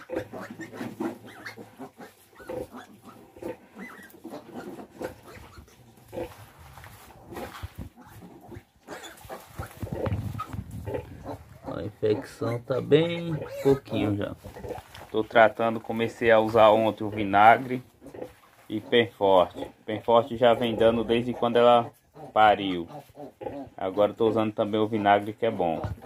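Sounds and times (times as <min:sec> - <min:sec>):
pigs grunting and squealing: 0:00.0 - 0:06.5, 0:07.3 - 0:26.0.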